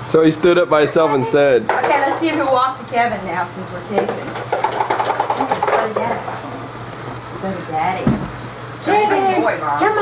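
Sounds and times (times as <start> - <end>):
rapid run of clicks: 4.3 - 5.8.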